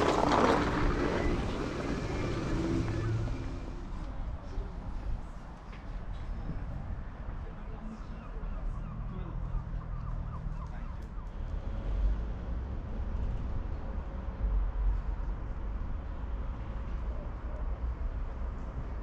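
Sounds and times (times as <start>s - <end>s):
wind buffeting microphone: 0.0s - 8.2s
faint outdoor background noise: 0.0s - 19.0s.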